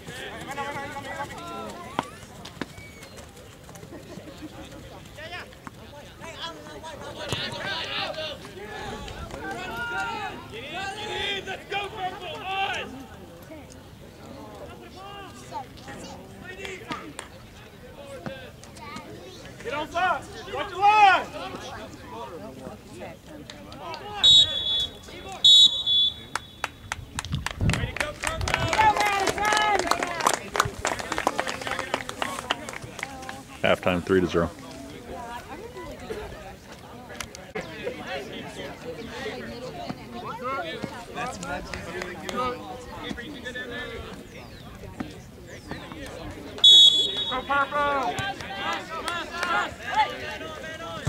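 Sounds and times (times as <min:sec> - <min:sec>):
people's voices: 0:00.0 - 0:51.0
referee's whistle blasts: 0:24.2 - 0:26.7, 0:46.6 - 0:47.7.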